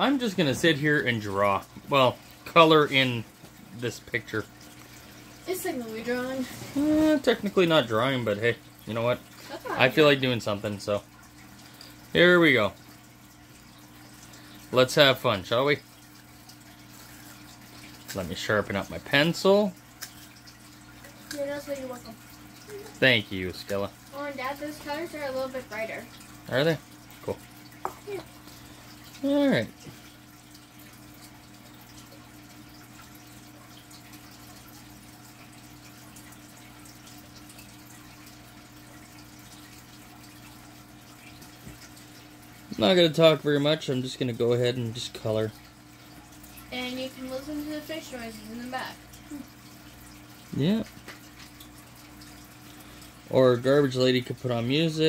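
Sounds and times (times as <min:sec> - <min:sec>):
aquarium filter water trickle: 0:00.0 - 0:55.0.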